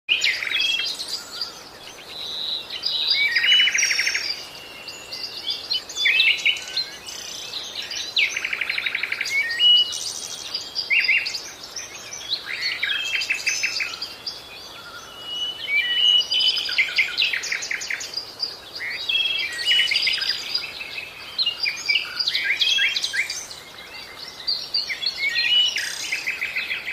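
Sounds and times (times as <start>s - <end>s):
birds chirping and trilling: 0.1s - 26.9s.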